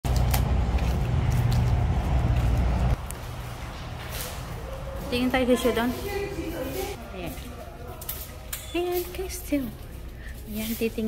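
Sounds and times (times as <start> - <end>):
low outdoor rumble: 0.0 - 7.0.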